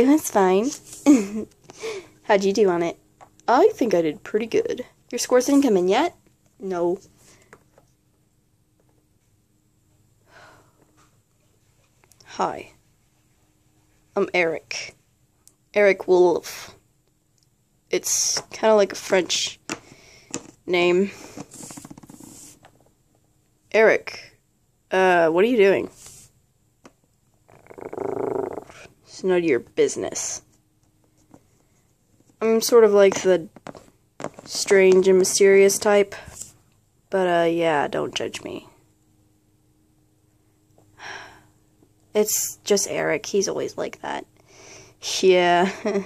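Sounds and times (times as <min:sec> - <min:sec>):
low purr-like growl: 0:27.5 - 0:28.9.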